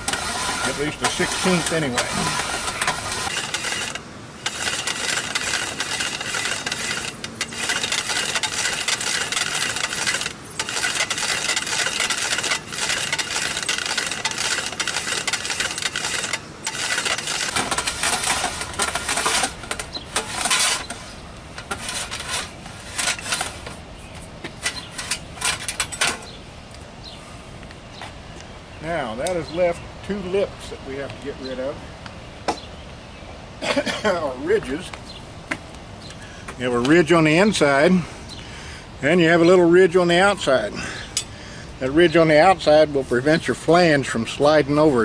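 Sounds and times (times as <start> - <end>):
tube cutter scraping pipe: 0.0 - 21.0.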